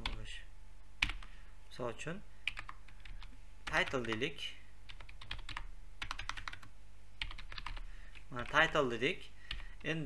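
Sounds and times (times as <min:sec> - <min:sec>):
keyboard typing: 0:01.0 - 0:01.3, 0:02.5 - 0:04.2, 0:04.9 - 0:08.9.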